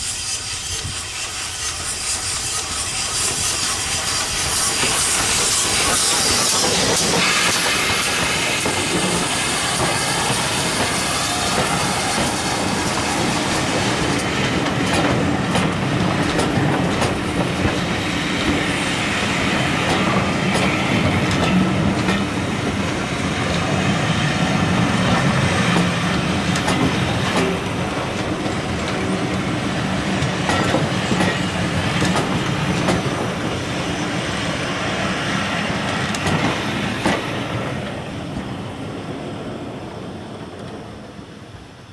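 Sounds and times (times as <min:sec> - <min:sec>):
train wheels clicking over rail joints: 0:00.0 - 0:38.5
steam hissing: 0:00.0 - 0:41.9
steam locomotive passing: 0:00.0 - 0:41.9.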